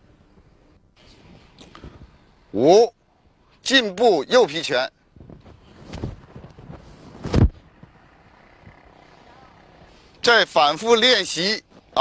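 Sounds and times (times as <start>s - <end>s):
low outdoor rumble: 4.5s - 12.0s
shuffling steps: 5.2s - 7.9s
clothing rustling: 5.3s - 7.5s
thump-whoosh of a strike: 5.3s - 7.6s.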